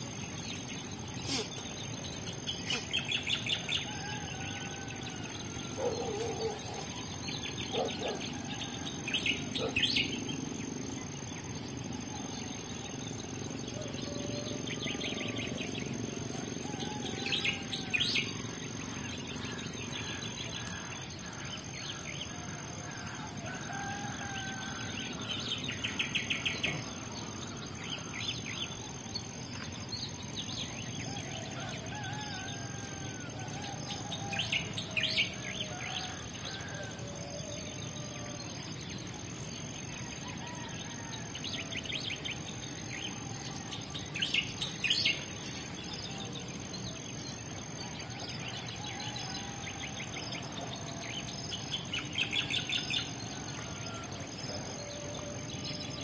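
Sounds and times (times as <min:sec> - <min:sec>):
birds chattering trills: 0:00.0 - 0:56.0.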